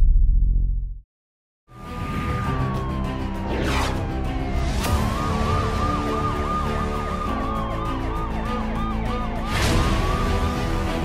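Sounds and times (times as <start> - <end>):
siren yelping: 2.4 - 10.7.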